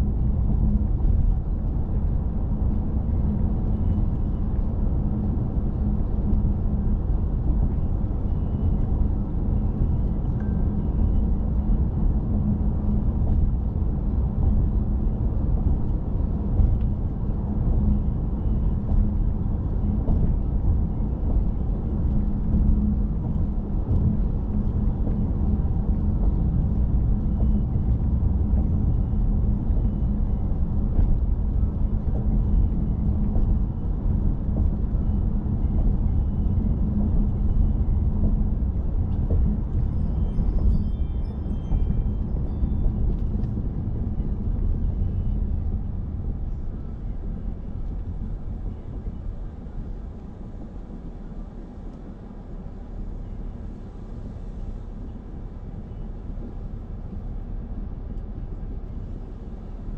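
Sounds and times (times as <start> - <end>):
car driving on road: 0.0 - 59.9.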